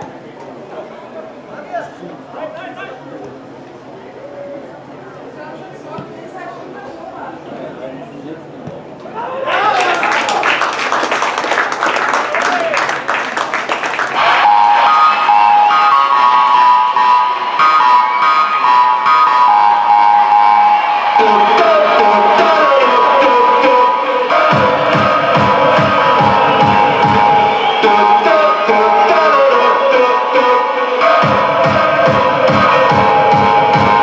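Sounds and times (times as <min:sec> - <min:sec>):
crowd cheering and clapping: 0:09.3 - 0:34.0
loud recorded music: 0:14.0 - 0:34.0
pulsing bass notes: 0:14.2 - 0:30.4, 0:31.2 - 0:34.0.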